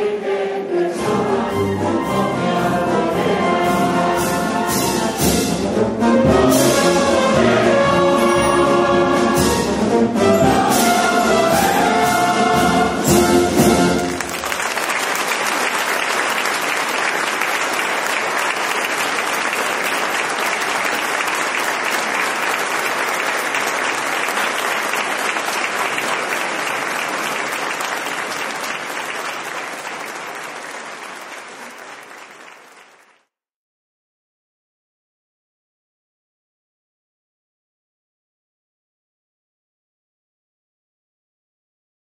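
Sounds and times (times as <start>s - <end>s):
audience applauding: 13.6s - 33.3s.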